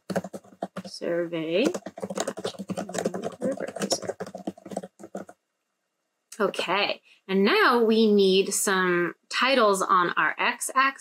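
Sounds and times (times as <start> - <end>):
fast keyboard typing: 0.0 - 5.4.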